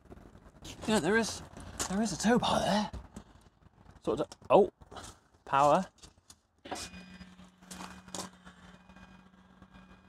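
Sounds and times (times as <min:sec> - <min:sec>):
electric motor humming: 0:06.7 - 0:10.0.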